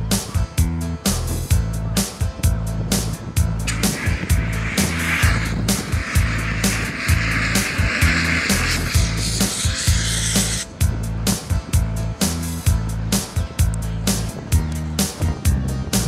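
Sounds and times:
fire extinguisher hissing: 3.7s - 10.7s
rock music with steady beat: 3.7s - 10.7s.

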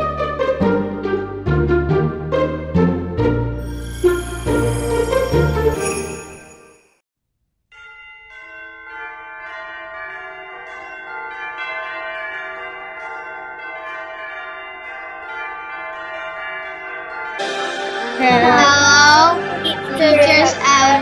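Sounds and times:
ringing bells music: 3.6s - 7.0s, 7.8s - 21.0s.

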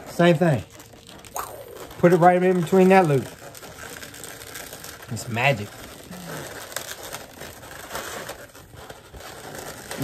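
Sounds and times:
balloons rubbing and rustling: 0.0s - 10.0s.

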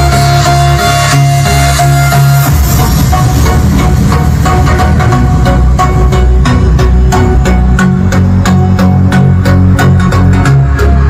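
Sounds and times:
loud music with heavy bass: 0.0s - 11.0s.

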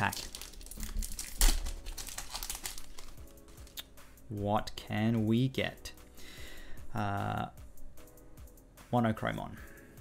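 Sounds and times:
foil pack tearing and crinkling: 0.0s - 3.4s.

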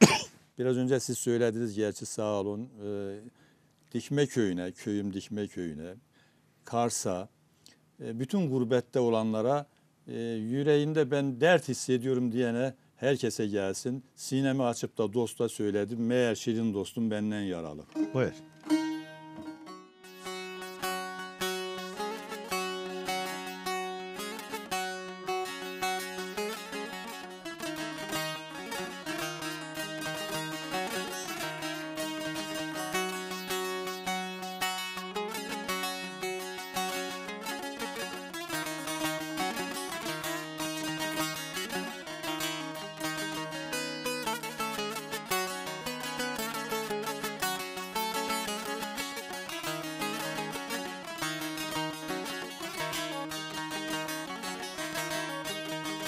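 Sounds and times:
plucked long-necked lute melody: 17.9s - 56.0s.

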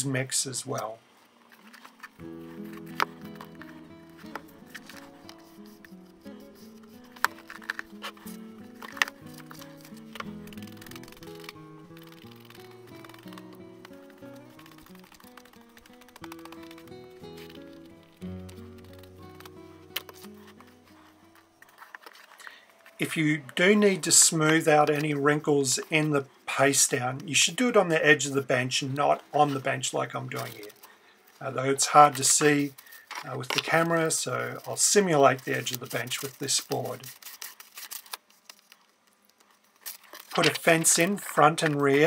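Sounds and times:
slow background music: 2.2s - 21.8s.

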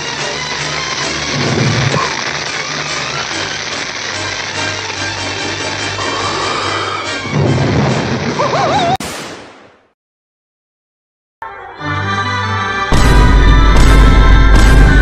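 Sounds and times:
fire rushing: 0.0s - 8.8s
film score music: 0.0s - 9.0s, 11.4s - 15.0s.

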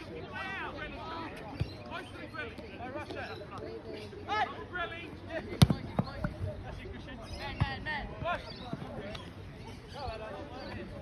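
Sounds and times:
soccer ball kicked: 5.5s - 6.5s.

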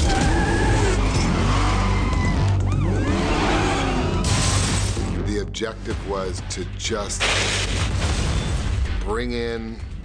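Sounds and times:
film music: 0.0s - 10.0s.

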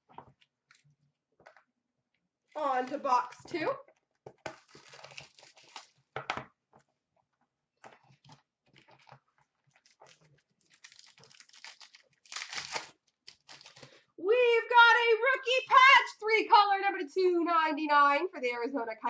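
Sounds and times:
wrapper crinkling and tearing: 2.5s - 3.4s, 4.5s - 6.1s, 8.0s - 14.0s.

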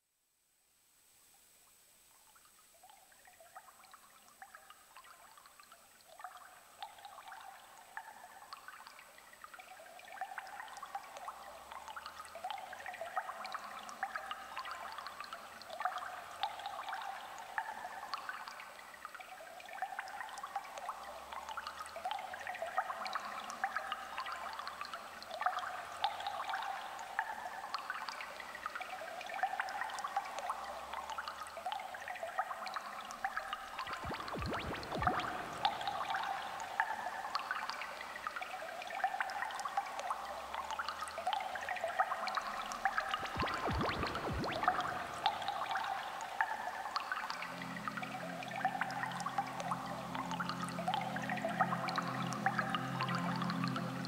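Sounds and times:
low pulsing bass line: 33.9s - 36.0s, 43.2s - 45.4s
synthesizer sequence of short notes: 33.9s - 36.0s, 43.1s - 45.9s.

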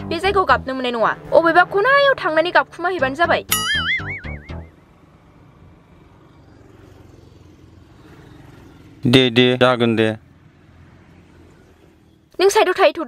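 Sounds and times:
comic boing sound effect: 3.5s - 4.7s.

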